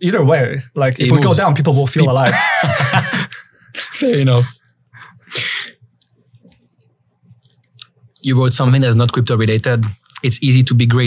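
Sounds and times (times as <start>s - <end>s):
man's sharp burst of breath: 5.0s - 5.8s.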